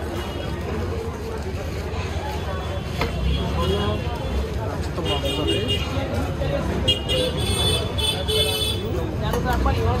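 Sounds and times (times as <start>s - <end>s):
faint background chatter: 0.0s - 10.0s
rumble of engines: 0.0s - 10.0s
vehicle horns tooting: 6.9s - 9.0s.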